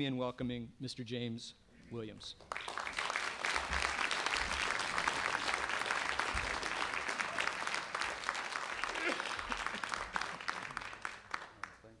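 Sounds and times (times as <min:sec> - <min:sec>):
audience applauding: 0:02.4 - 0:12.0.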